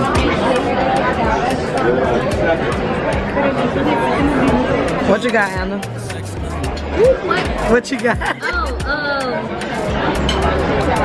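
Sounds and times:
babble of diners' conversation: 0:00.0 - 0:11.0.

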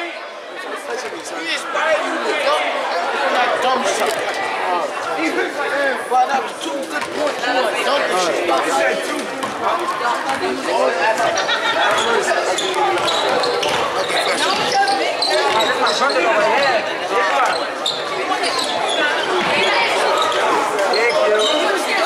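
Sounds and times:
din of many voices: 0:00.0 - 0:22.0.

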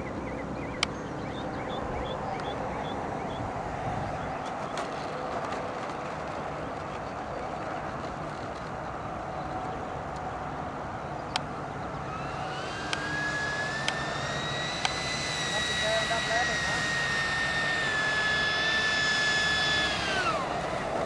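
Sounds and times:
electric ducted fan whine: 0:00.0 - 0:21.0
sharp clicks: 0:12.8 - 0:13.1, 0:13.7 - 0:15.1.

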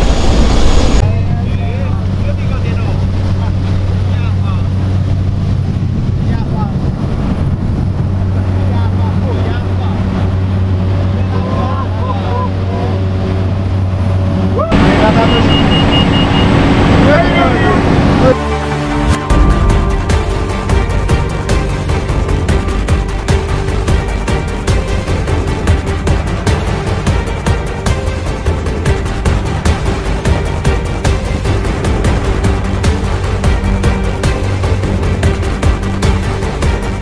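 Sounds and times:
propeller plane engine drone: 0:00.0 - 0:37.0
voices: 0:11.0 - 0:13.2, 0:14.6 - 0:18.4.

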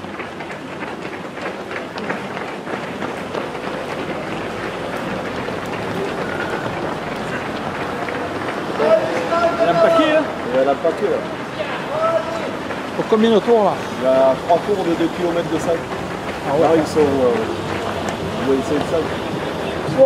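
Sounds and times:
murmur of spectators: 0:00.0 - 0:20.0
runners' footfalls on asphalt: 0:00.0 - 0:20.0.

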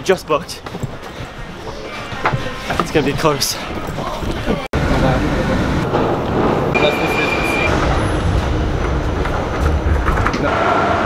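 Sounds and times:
footsteps of people hurrying: 0:00.0 - 0:04.7
outdoor background noise: 0:00.0 - 0:11.0.

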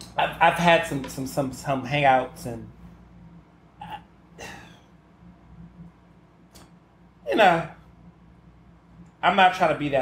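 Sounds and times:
low steady hum: 0:00.0 - 0:10.0
man's mouth sound: 0:03.8 - 0:04.1.

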